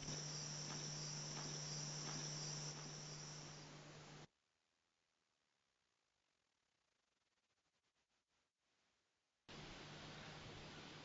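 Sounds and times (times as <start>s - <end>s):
insects chirring: 0.0s - 4.3s
low steady hum: 0.0s - 4.7s, 9.5s - 11.0s.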